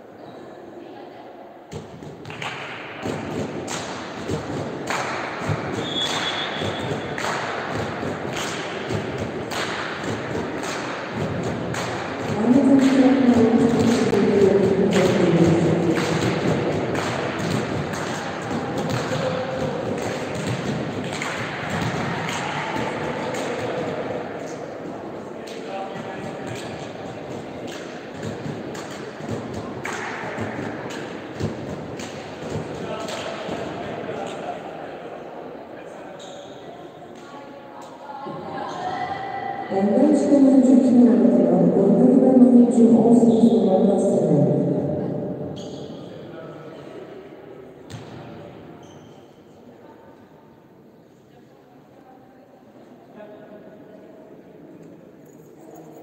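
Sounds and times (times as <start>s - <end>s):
players and spectators voices: 0.0s - 56.0s
volleyball hits and thuds: 1.7s - 24.0s, 27.7s - 32.9s, 47.9s - 48.4s.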